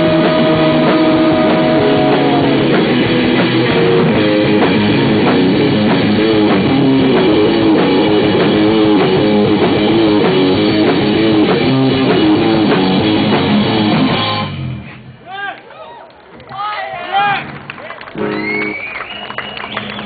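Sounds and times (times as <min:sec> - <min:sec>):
live rock band playing: 0:00.0 - 0:15.1, 0:17.4 - 0:20.0
drum kit: 0:00.0 - 0:15.2
electric guitars: 0:00.0 - 0:15.2, 0:17.4 - 0:20.0.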